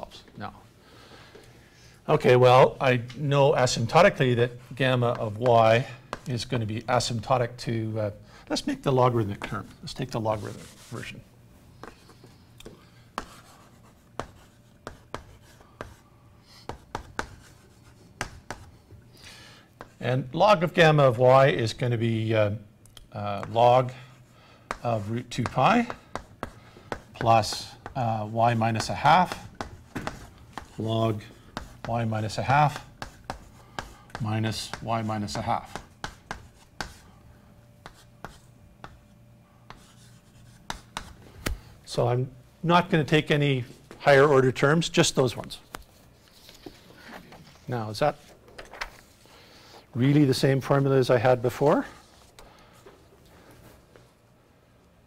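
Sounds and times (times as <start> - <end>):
chalk writing on blackboard: 5.2 - 6.4, 10.3 - 11.2, 13.2 - 18.8, 19.8 - 20.0, 23.4 - 37.1, 37.8 - 39.1, 39.7 - 41.2.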